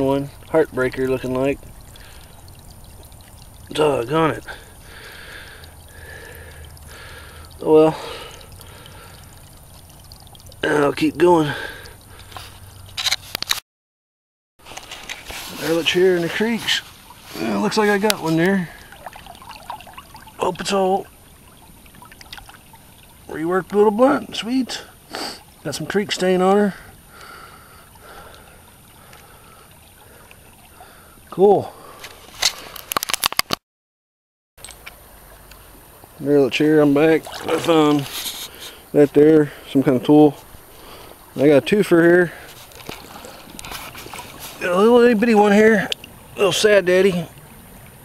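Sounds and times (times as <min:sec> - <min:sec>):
water trickling over stones: 0:00.0 - 0:13.6, 0:14.6 - 0:33.6, 0:34.6 - 0:48.0.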